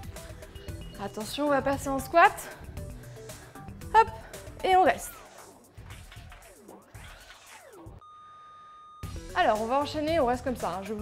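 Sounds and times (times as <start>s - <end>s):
quiet music with low beat: 0.0s - 8.0s.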